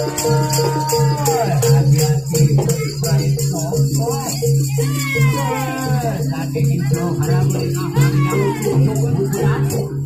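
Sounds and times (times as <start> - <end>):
percussion ensemble pitched notes: 0.0 - 10.0
high wailing melodic line: 4.3 - 9.8.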